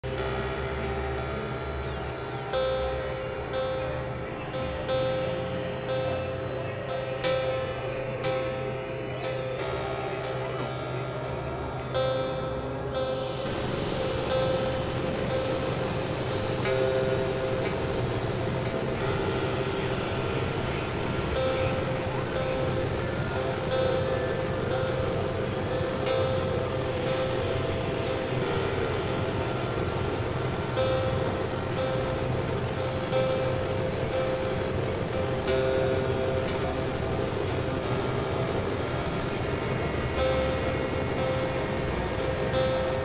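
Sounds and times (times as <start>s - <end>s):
held synth tones: 0.0s - 43.0s
rumbling synthesizer drone: 0.0s - 43.0s.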